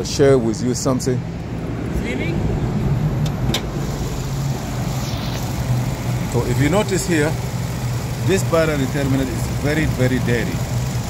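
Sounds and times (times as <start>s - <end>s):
car engine idling: 1.3s - 11.0s.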